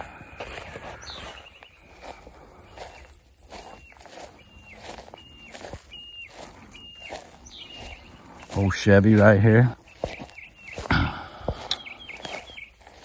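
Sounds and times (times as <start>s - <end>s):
footsteps through long grass: 0.0s - 13.0s.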